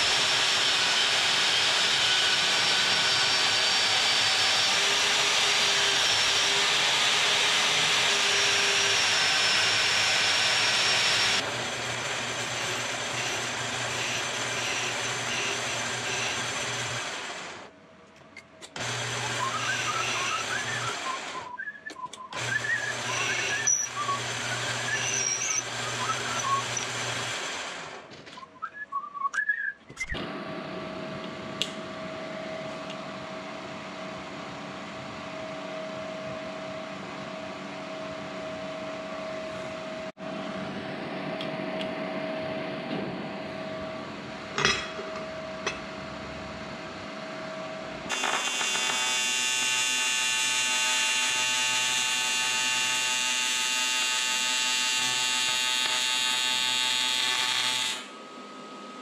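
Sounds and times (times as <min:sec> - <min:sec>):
metal lathe whining: 0:00.0 - 0:17.7, 0:18.7 - 0:28.1, 0:47.4 - 0:58.2
welding arc buzzing: 0:08.1 - 0:17.7, 0:22.4 - 0:28.1, 0:48.1 - 0:58.1.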